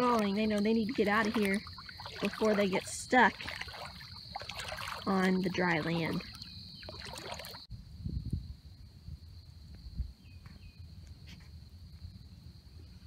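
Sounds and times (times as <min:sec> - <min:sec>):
wind rumble on microphone: 0:07.6 - 0:13.0.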